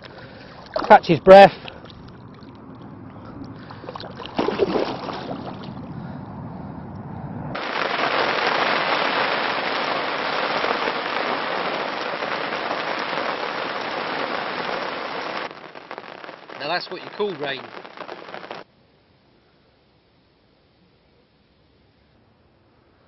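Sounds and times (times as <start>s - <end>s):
water sloshing and splashing: 0.0s - 5.9s
heavy rain on lake: 7.6s - 18.7s.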